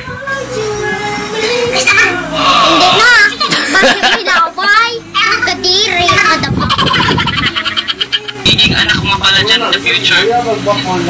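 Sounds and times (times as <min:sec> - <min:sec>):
background music: 0:00.0 - 0:11.0
voices talking: 0:01.4 - 0:11.0.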